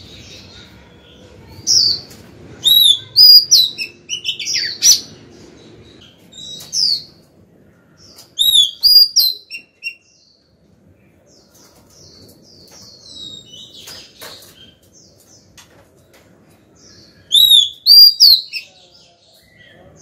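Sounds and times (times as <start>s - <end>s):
bird singing whistled notes: 8.4s - 10.2s, 17.2s - 18.7s.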